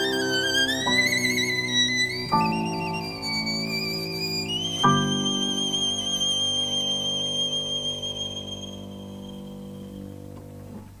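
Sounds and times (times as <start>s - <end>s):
violin holding high note: 0.0s - 10.4s.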